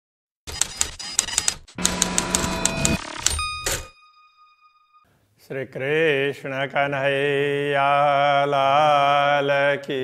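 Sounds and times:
bright bell-like chime: 3.2 - 5.1.

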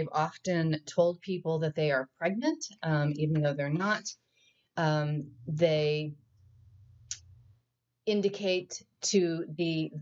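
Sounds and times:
faint low hum: 5.0 - 8.0.

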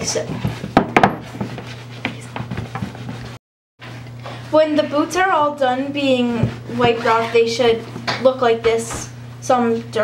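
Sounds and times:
steady low hum: 0.0 - 10.0
towel rubbing leather boot: 0.1 - 3.4.

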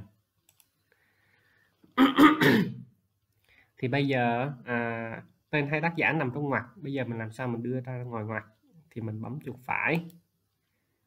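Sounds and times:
computer mouse clicks: 0.4 - 1.0, 9.9 - 10.3.

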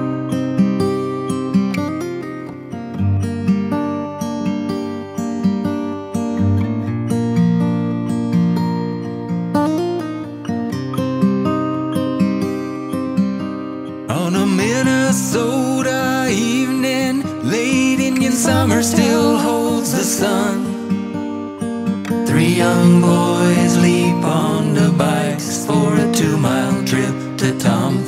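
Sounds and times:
acoustic guitar picking: 0.0 - 28.0
wavering melody: 18.4 - 20.8.

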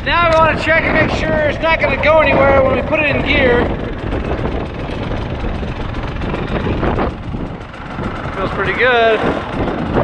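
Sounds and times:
dirt bike engine idling: 0.0 - 10.0
wind on microphone: 0.0 - 10.0.

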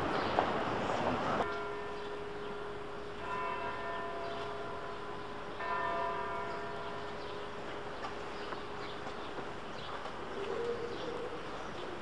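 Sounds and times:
street noise: 0.0 - 12.0.

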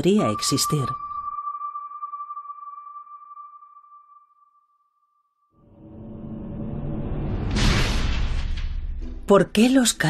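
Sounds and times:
steady electronic tone: 0.0 - 7.2.

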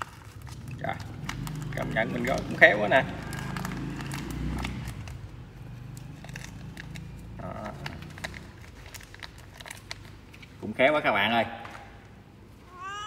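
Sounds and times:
crackles of rice paper being rolled: 0.0 - 10.8.

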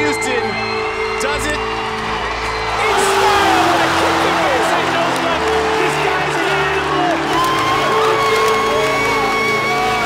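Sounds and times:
background music with held notes: 0.0 - 10.0
crowd cheering and whooping: 0.2 - 10.0.

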